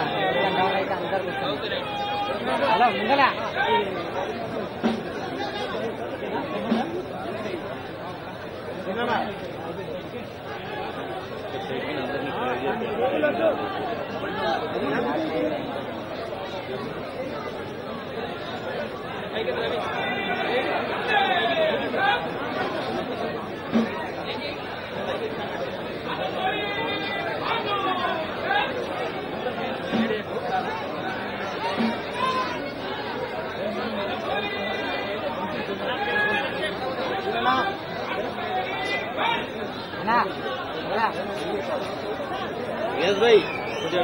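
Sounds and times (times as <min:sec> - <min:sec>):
crowd chatter: 0:00.0 - 0:44.0.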